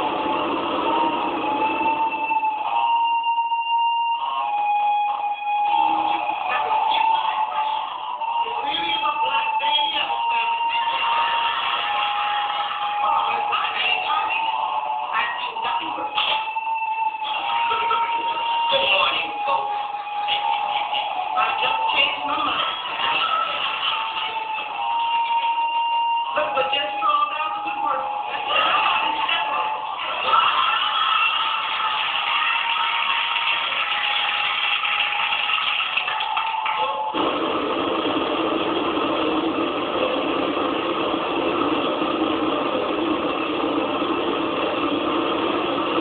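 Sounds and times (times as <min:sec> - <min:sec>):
steady high-pitched synth tone: 0:00.0 - 0:31.2, 0:36.8 - 0:46.0
distorted noise music: 0:00.0 - 0:46.0.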